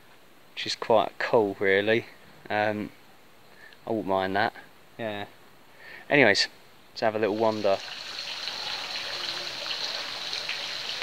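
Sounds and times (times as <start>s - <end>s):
outdoor background hiss: 0.0s - 11.0s.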